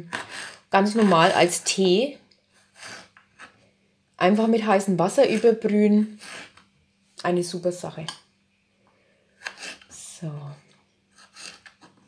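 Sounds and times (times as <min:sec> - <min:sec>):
woman speaking: 0:00.7 - 0:02.2, 0:04.2 - 0:06.2, 0:07.2 - 0:08.2, 0:09.9 - 0:10.7.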